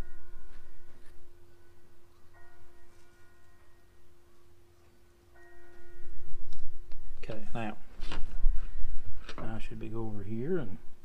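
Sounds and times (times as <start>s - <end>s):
bell-like chord: 0.0s - 8.0s.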